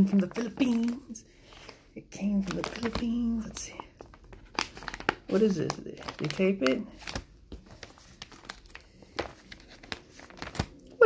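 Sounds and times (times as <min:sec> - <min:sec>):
plastic pouch crinkling: 0:00.0 - 0:11.0.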